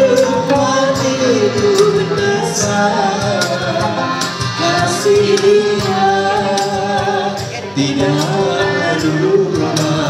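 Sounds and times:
accordion: 0.0s - 10.0s
bass guitar: 0.0s - 10.0s
person singing: 0.0s - 10.0s.

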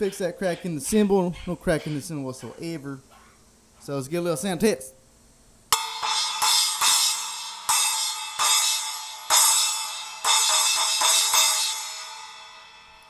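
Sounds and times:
splash cymbal struck with drumstick: 5.7s - 13.0s.

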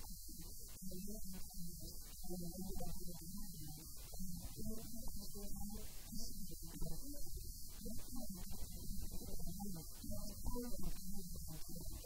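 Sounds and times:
woman talking into a microphone: 0.0s - 12.0s.

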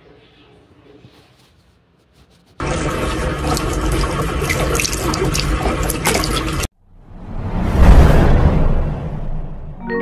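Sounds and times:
tap water splashing into sink: 2.6s - 6.7s.

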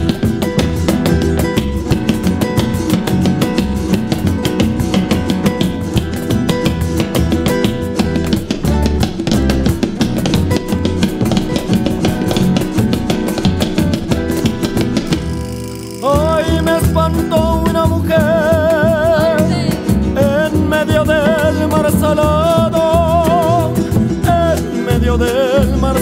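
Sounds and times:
band playing instrumental: 0.0s - 20.4s
drum kit: 0.0s - 26.0s
guitar: 0.0s - 26.0s.

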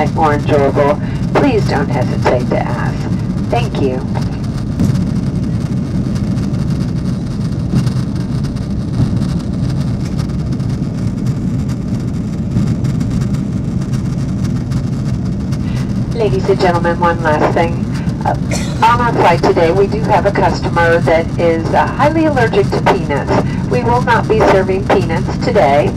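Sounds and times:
jet engines roaring in cabin: 0.0s - 25.9s
rushing airflow: 2.0s - 25.9s.

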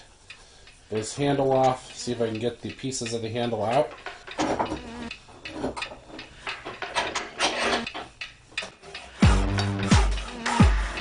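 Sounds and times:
electronic music with heavy bass: 9.2s - 11.0s.

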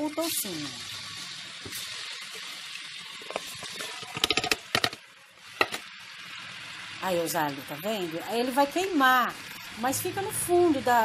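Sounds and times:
pork fat sizzling in oil: 0.0s - 11.0s
sharp clicks and knocks: 3.3s - 5.0s.

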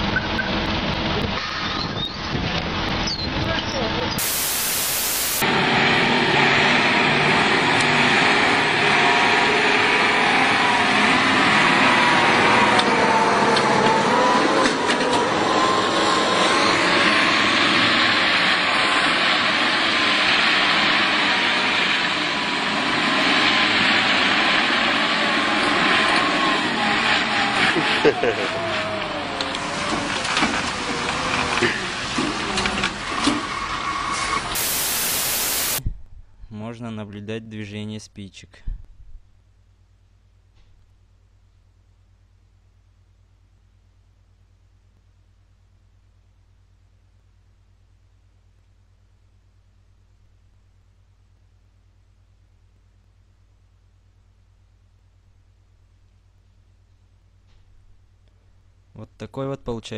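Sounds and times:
truck engine running hard: 0.0s - 35.8s
burst of static: 4.2s - 5.6s, 34.6s - 35.8s
wavering whine: 4.2s - 31.5s, 34.6s - 35.8s.

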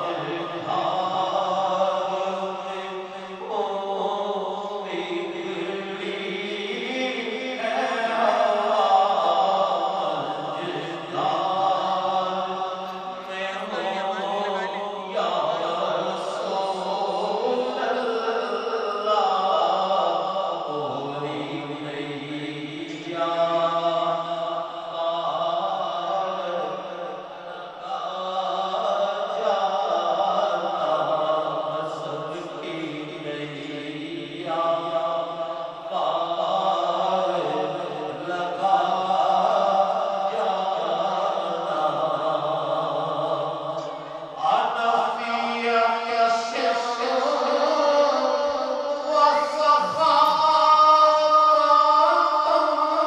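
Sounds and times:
man singing through microphone: 0.0s - 53.0s.

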